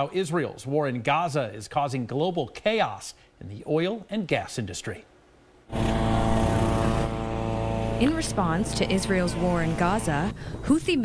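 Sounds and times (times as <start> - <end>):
noise hiss: 0.0 - 11.0
engine-like drone: 5.7 - 10.6.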